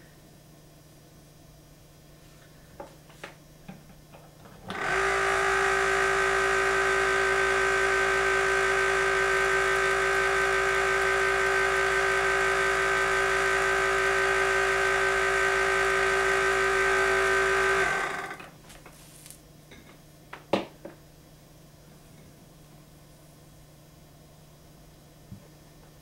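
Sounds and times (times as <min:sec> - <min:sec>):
generator motor hum and whine: 0:04.4 - 0:18.8.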